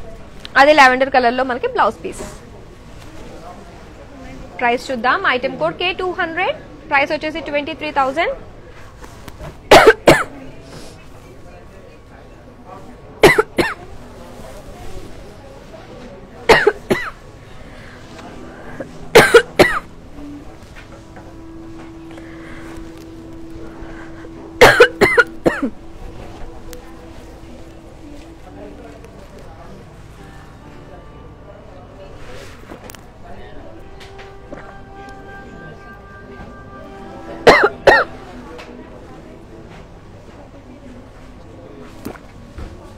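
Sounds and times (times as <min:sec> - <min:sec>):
faint background music: 0:00.0 - 0:42.9
person coughing: 0:09.7 - 0:10.3, 0:19.1 - 0:19.9, 0:24.6 - 0:25.7, 0:37.4 - 0:38.1.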